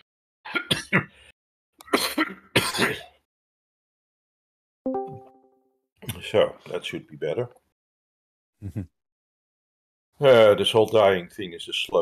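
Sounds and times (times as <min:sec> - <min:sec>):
person coughing: 0:00.5 - 0:01.1, 0:01.9 - 0:03.2.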